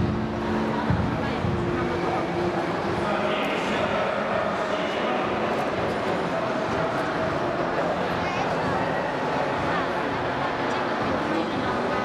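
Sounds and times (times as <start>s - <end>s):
babble of distant voices: 0.0s - 12.0s.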